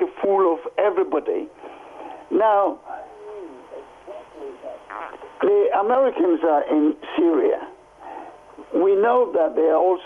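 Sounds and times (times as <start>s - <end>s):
telephone speech: 3.1s - 5.6s.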